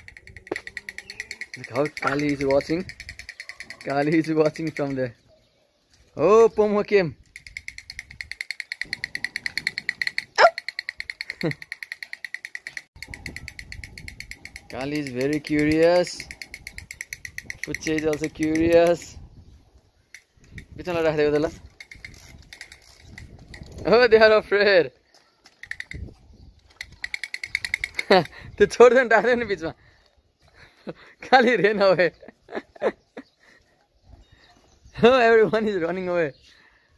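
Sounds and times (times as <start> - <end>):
toy drum rattling taps: 0.0 - 5.0, 7.2 - 19.1, 26.8 - 28.3.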